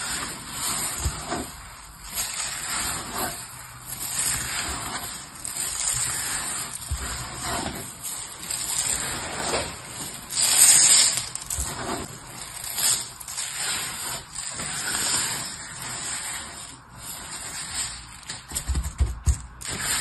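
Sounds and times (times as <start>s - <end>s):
dry soap crumbs rustling: 0.0s - 20.0s.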